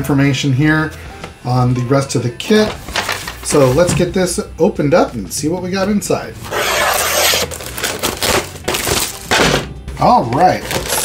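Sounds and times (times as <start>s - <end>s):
plastic shrink-wrap tearing: 6.5s - 9.3s, 10.5s - 11.0s.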